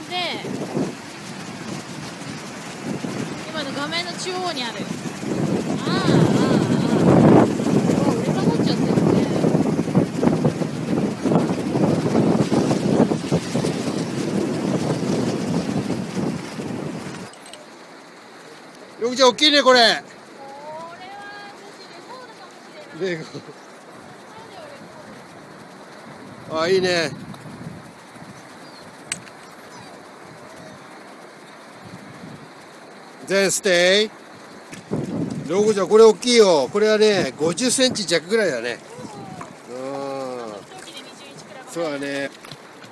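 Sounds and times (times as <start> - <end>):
river rapids rushing: 0.0 - 15.6, 35.5 - 42.9
wind buffeting microphone: 0.0 - 18.4, 19.2 - 42.9
person exclaiming: 5.8 - 7.3, 38.9 - 40.6.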